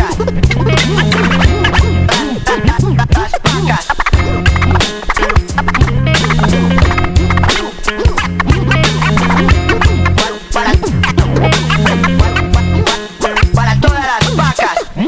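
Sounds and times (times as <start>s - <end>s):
hip hop drum beat: 0.0s - 15.0s
turntable scratching: 0.0s - 15.0s.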